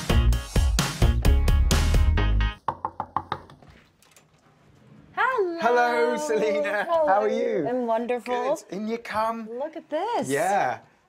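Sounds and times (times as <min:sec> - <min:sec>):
knocking on wooden door: 0:02.7 - 0:03.6.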